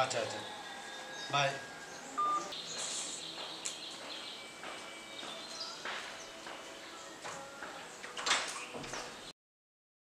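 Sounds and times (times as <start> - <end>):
phone beep: 2.2 - 2.5.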